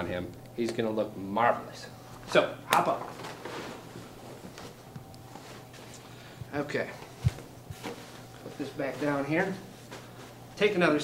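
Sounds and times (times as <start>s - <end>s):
clothing rustling: 2.8s - 11.0s.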